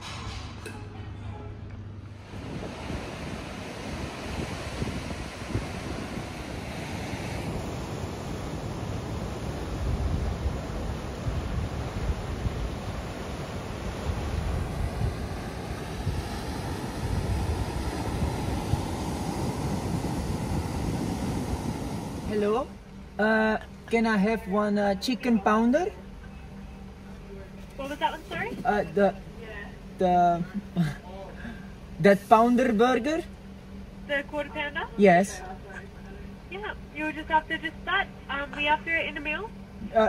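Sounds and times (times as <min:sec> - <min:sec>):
ocean surf on rocky shore: 0:02.1 - 0:23.2
wind buffeting microphone: 0:02.1 - 0:23.2.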